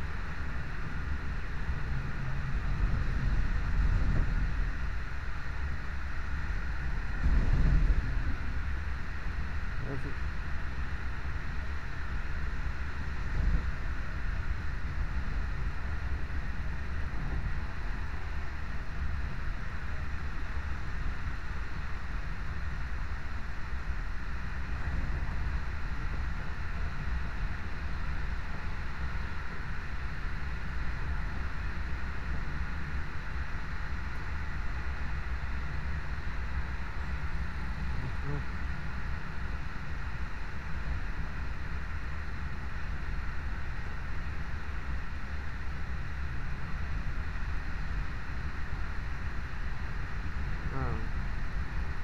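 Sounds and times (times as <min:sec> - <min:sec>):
train wheels rumbling on rails: 0:00.0 - 0:38.3.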